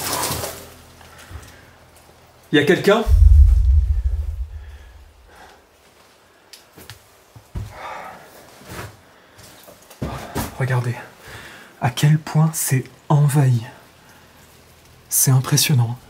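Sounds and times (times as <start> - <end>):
deep low boom: 3.1 - 5.3.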